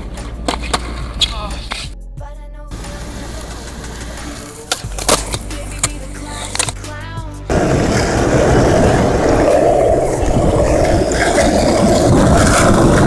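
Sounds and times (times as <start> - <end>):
skateboard rolling: 0.0 - 1.9, 2.8 - 6.9, 7.5 - 13.0
background music: 0.0 - 13.0
skateboard wooden clacks: 3.5 - 6.8.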